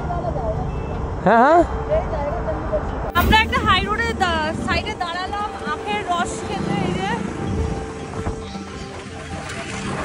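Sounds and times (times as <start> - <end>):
highway traffic rumble: 0.0 - 10.0
people talking: 1.9 - 7.2.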